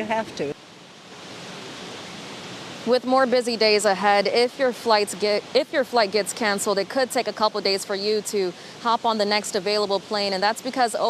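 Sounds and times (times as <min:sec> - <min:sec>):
woman's voice: 0:00.0 - 0:00.6, 0:02.9 - 0:11.0.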